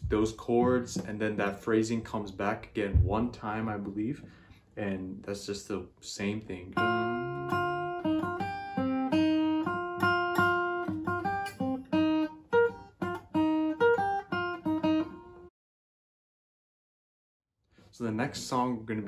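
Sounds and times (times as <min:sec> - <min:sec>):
acoustic guitar picked melody: 0:06.8 - 0:15.5.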